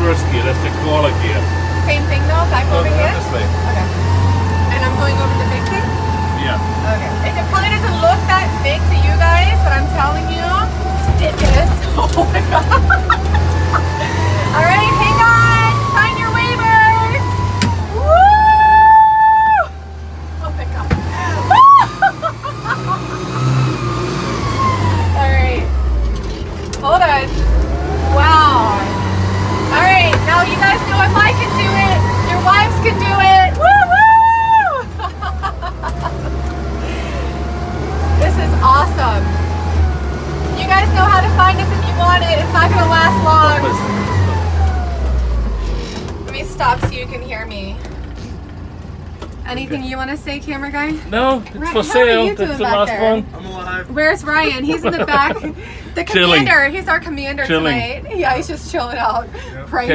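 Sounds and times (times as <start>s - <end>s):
off-road vehicle engine droning: 0.0s - 59.9s
person crying out: 21.4s - 22.1s.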